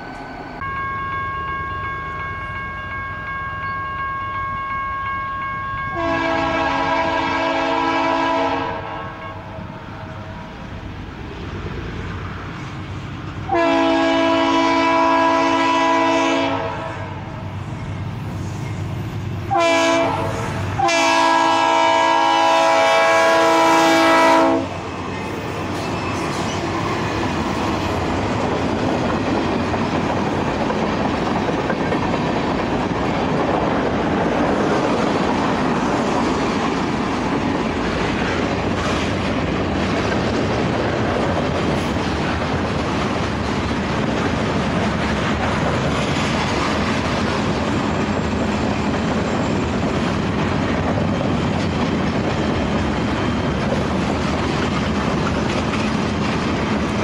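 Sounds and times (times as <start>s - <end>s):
train wheels on rail: 0.0s - 57.0s
locomotive air horn: 0.6s - 10.6s, 13.5s - 17.3s, 19.5s - 24.8s.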